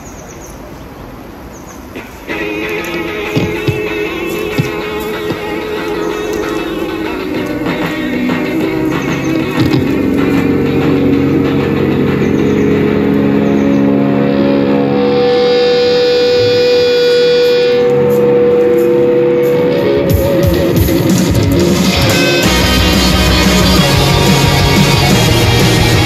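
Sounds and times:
droning electric guitar: 2.3 - 26.0.

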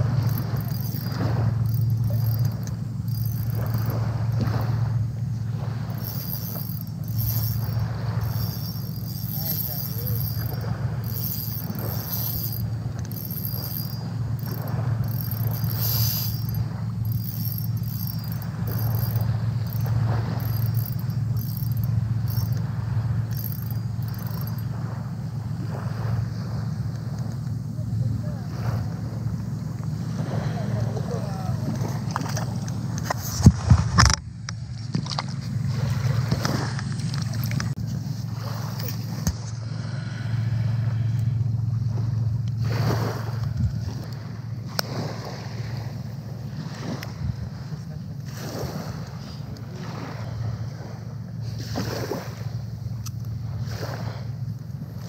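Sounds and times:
wind on microphone: 0.0 - 52.5
low steady hum: 0.0 - 55.0
faint wavering voices: 0.1 - 4.6, 5.9 - 22.6, 30.1 - 32.7
wind buffeting microphone: 41.6 - 51.0.

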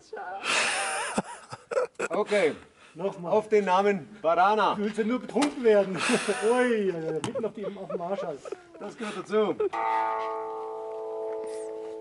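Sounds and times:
electric guitar chord ringing: 9.7 - 12.0.

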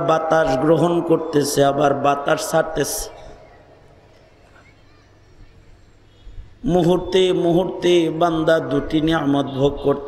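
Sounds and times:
man speaking over public address: 0.0 - 3.3, 6.6 - 10.0.

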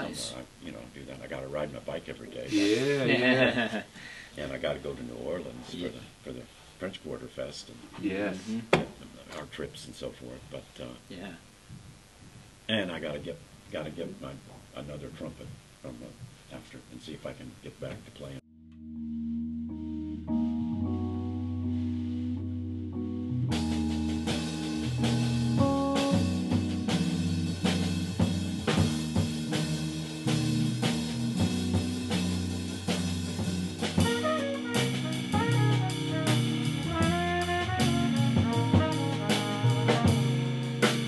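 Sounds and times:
horn melody: 18.5 - 41.0
small-group jazz music: 18.6 - 41.0.

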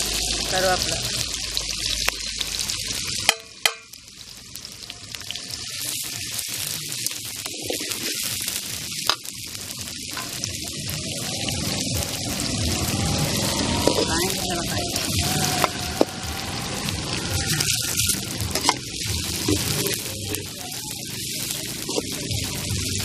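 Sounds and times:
onions sizzling in hot oil: 0.0 - 23.0
ladle knocking on pan: 3.3 - 3.9.

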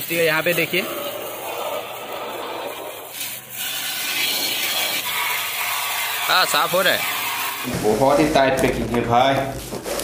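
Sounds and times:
pressure washer water jet spraying: 0.0 - 7.7.

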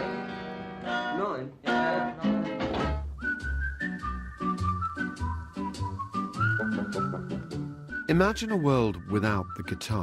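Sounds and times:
backing music with beat and bass: 2.6 - 8.5
whistled melody: 3.0 - 10.0.

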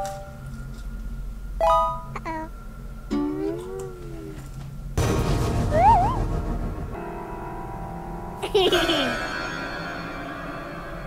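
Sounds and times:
background music: 0.0 - 11.0
bell-like chimes: 8.8 - 11.0.

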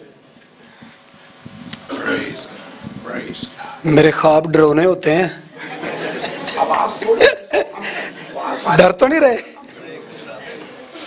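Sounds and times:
person chuckling: 5.7 - 8.2.

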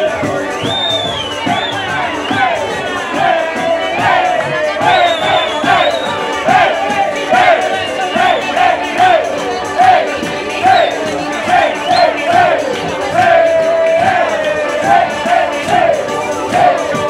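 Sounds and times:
crowd singing and shouting: 0.0 - 17.0
folk band music: 0.0 - 17.0.

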